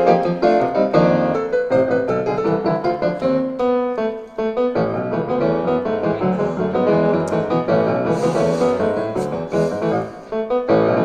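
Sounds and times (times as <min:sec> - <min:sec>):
piano notes and chords: 0:00.0 - 0:11.0.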